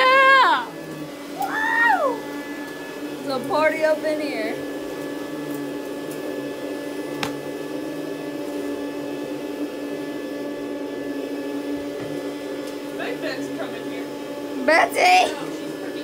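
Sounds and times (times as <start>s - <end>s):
vacuum cleaner running: 0.0s - 16.0s.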